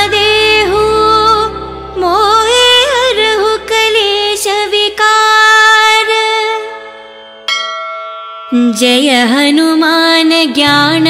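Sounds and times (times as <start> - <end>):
bell ringing: 7.0 - 9.9.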